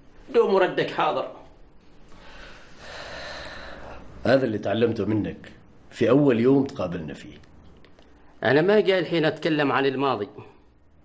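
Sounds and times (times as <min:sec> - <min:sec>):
man breathing: 0:02.1 - 0:04.2.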